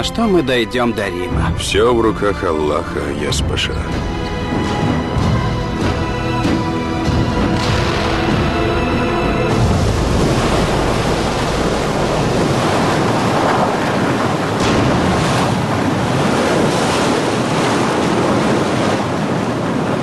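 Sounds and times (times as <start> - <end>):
sea waves washing: 0.0 - 20.0
wind blowing: 0.7 - 20.0.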